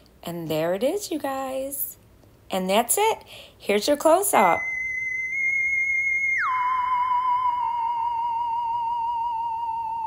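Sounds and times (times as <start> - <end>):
sliding electronic tone: 4.5 - 10.0.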